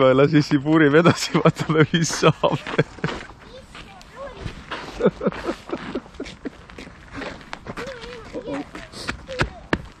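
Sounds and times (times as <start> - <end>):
faint voices talking: 7.2 - 9.8.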